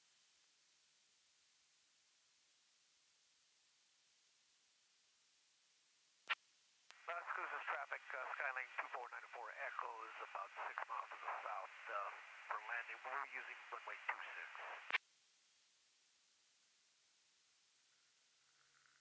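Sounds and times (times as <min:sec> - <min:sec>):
radio squelch click: 0:06.9 - 0:15.0
voice over aircraft radio: 0:07.0 - 0:14.9.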